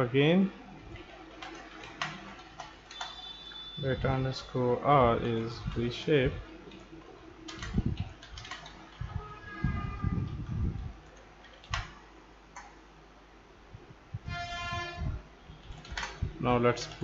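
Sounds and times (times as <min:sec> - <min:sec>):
keyboard typing: 0:00.9 - 0:03.8, 0:05.3 - 0:09.1, 0:11.0 - 0:12.8, 0:15.6 - 0:16.2.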